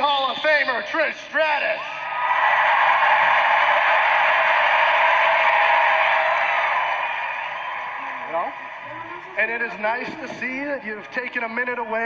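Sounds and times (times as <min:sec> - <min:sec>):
arena crowd cheering: 0:00.0 - 0:12.0.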